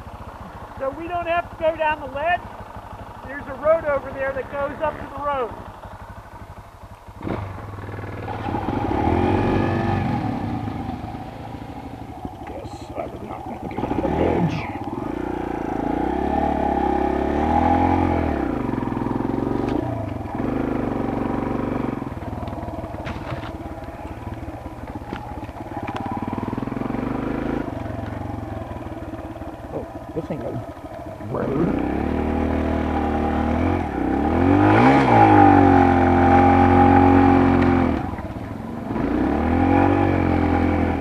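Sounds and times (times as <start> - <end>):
dirt bike engine revving: 7.2 - 41.0.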